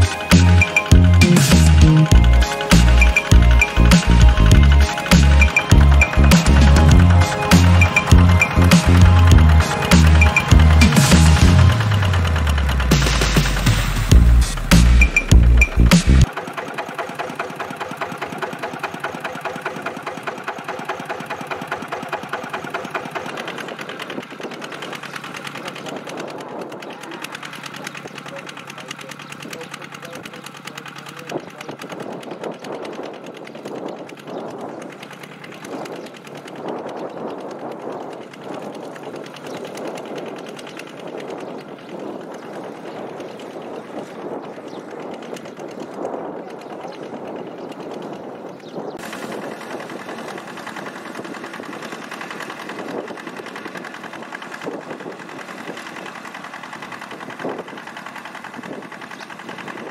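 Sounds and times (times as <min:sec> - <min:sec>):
diesel tractor engine running: 0:00.0 - 0:59.9.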